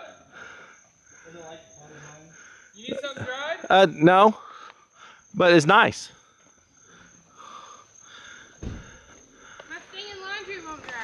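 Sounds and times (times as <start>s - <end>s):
low thump: 8.6s - 9.1s.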